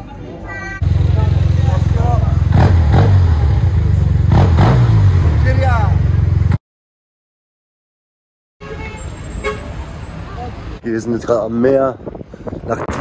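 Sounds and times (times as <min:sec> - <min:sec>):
voices: 0:00.0 - 0:02.6
scooter engine revving: 0:00.8 - 0:06.6.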